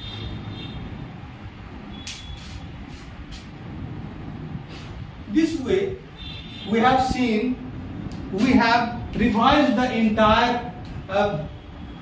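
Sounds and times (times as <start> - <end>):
short high hisses: 2.1 - 3.5, 4.7 - 5.0
steady low rumble: 2.6 - 6.1, 6.8 - 11.7.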